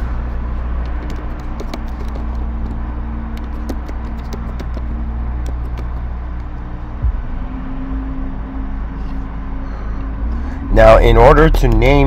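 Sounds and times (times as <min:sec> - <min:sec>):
low rumble and hum: 0:00.0 - 0:12.0.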